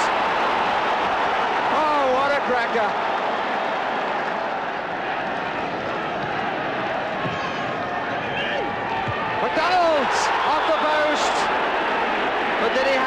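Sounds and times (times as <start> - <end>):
crowd cheering: 0.0 - 13.0.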